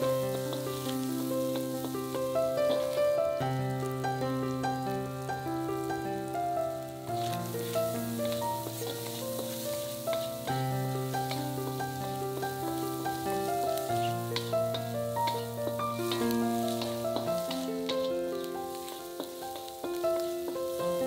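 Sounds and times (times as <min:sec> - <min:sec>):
food sizzling in a wok: 0:00.0 - 0:21.0
spatula clicking and scraping pan: 0:08.7 - 0:10.5, 0:13.9 - 0:20.8.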